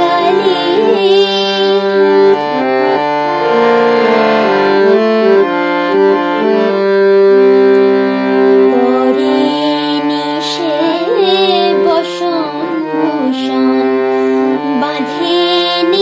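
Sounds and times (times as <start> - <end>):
harmonium melody: 0.0 - 16.0.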